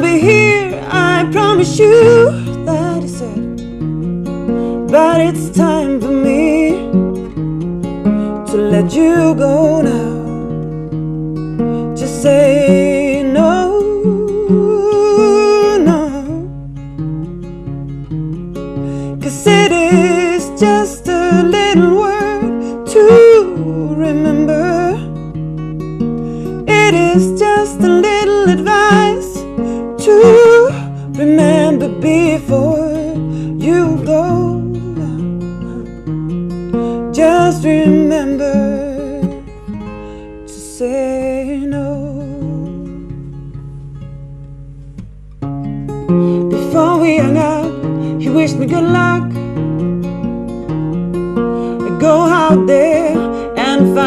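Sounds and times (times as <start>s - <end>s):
woman singing: 0.0s - 3.8s, 4.8s - 7.2s, 8.3s - 10.7s, 11.9s - 16.6s, 19.1s - 25.2s, 26.6s - 36.0s, 37.0s - 39.6s, 40.5s - 43.2s, 46.5s - 49.5s, 51.7s - 54.0s
acoustic guitar: 0.0s - 54.0s.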